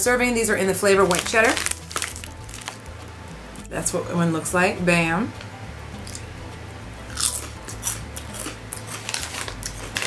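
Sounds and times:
chips crunching: 0:00.9 - 0:02.8, 0:06.0 - 0:06.3, 0:07.1 - 0:10.0.

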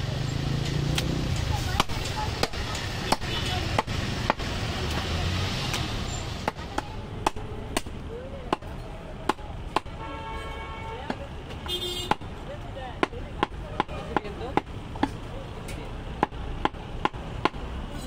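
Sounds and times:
cleaver chopping meat: 0:00.9 - 0:05.0, 0:06.4 - 0:09.9, 0:13.0 - 0:15.2, 0:16.2 - 0:17.6.

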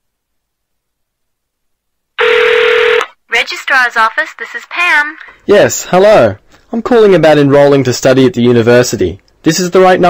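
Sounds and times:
electronic telephone ring: 0:02.2 - 0:03.2.

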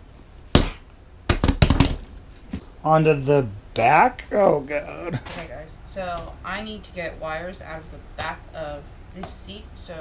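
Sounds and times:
hand slapping seat cushion: 0:00.5 - 0:02.1.

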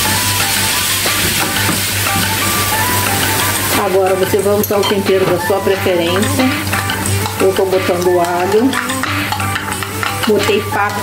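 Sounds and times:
background music: 0:00.0 - 0:11.0
meat sizzling in a pan: 0:00.0 - 0:11.0.

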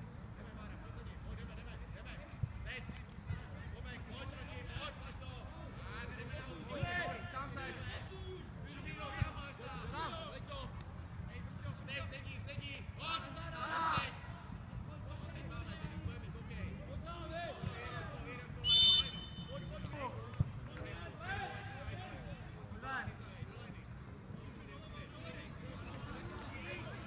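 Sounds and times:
players shouting: 0:18.6 - 0:19.6
referee whistle blast: 0:18.6 - 0:19.7.

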